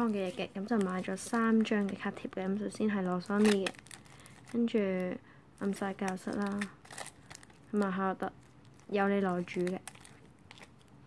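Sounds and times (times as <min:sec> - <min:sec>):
woman talking: 0:00.0 - 0:03.8, 0:04.5 - 0:06.8, 0:07.7 - 0:09.9
plastic packaging crinkling: 0:00.0 - 0:11.0.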